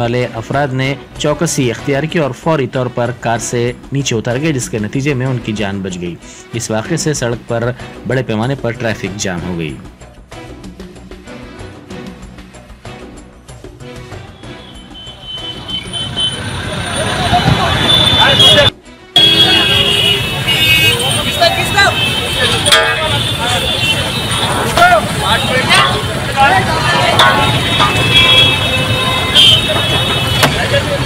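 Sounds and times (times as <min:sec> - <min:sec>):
road traffic: 0:13.8 - 0:31.0
car horns honking: 0:14.3 - 0:31.0
crowd talking: 0:15.2 - 0:31.0.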